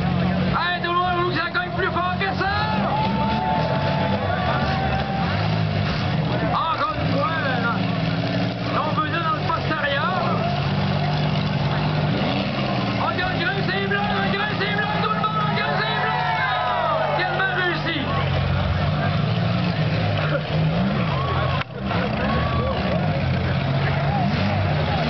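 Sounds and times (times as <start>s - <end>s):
car engines revving: 0.0s - 25.0s
spectators shouting and talking: 0.0s - 25.0s.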